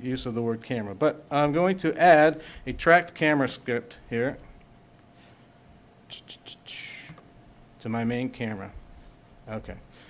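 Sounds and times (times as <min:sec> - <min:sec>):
man whispering: 0:06.1 - 0:07.2.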